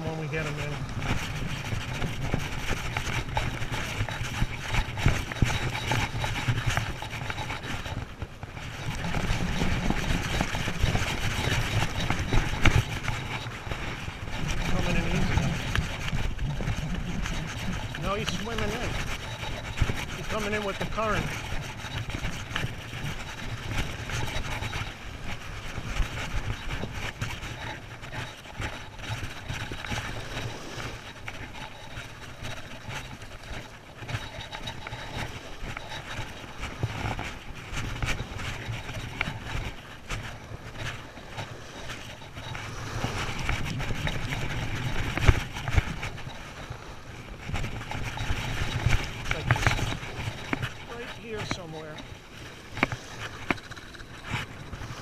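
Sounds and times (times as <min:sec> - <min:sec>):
fishing reel being cranked: 0:00.0 - 0:55.0
reel clicking: 0:00.0 - 0:55.0
surf washing on beach: 0:00.0 - 0:55.0
wind rumble on microphone: 0:00.0 - 0:55.0.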